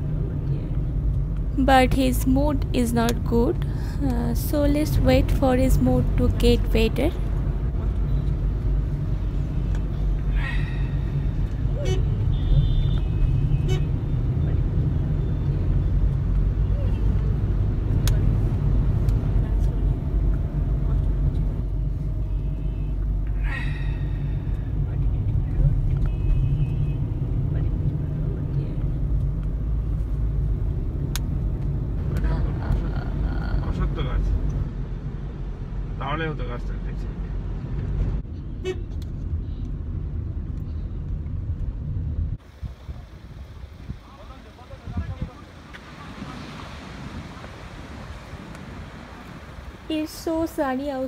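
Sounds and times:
car cabin road and engine rumble: 0:00.0 - 0:51.0.

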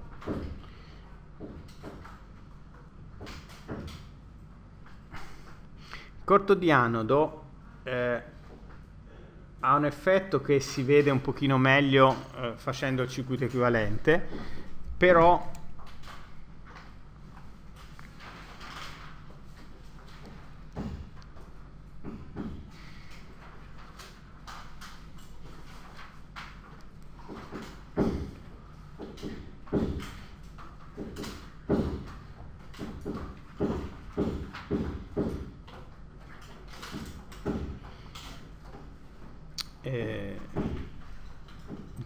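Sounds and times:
building work thuds and knocks: 0:00.0 - 0:00.8, 0:01.4 - 0:02.3, 0:03.2 - 0:04.1, 0:18.3 - 0:38.9, 0:40.4 - 0:42.0
steady low hum: 0:00.0 - 0:42.0.

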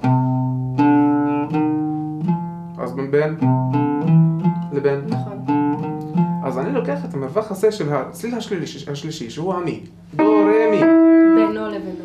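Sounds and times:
oud plucked notes: 0:00.0 - 0:12.0.

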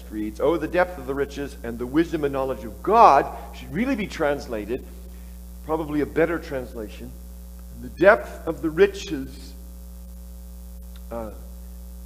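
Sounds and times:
man saying uh: 0:00.0 - 0:04.8, 0:05.7 - 0:07.1, 0:07.8 - 0:09.6, 0:11.1 - 0:11.4
electrical mains hum: 0:00.0 - 0:12.0.

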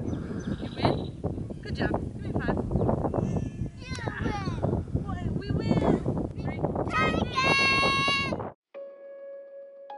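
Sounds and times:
child shouting: 0:03.8 - 0:04.6, 0:06.9 - 0:08.4
adult voices: 0:03.8 - 0:07.7.

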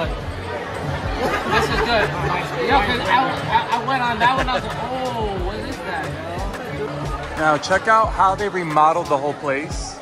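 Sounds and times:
overlapping conversation: 0:00.0 - 0:10.0.

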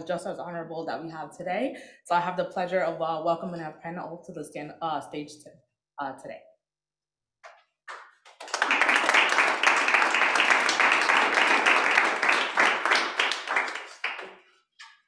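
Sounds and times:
audience applauding: 0:07.9 - 0:14.5.

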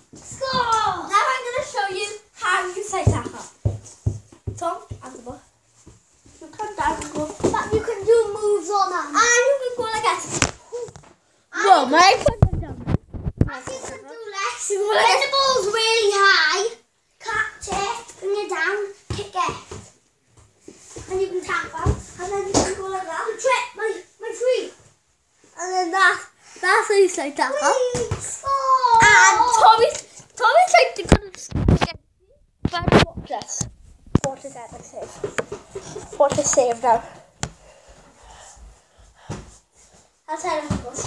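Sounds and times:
young children calling out: 0:27.6 - 0:30.0
thumps: 0:32.6 - 0:37.6
child breathing: 0:36.9 - 0:40.2.

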